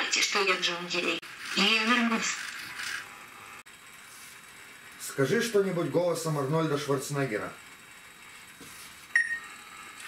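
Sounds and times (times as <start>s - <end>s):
short electronic beep: 9.2s - 9.5s.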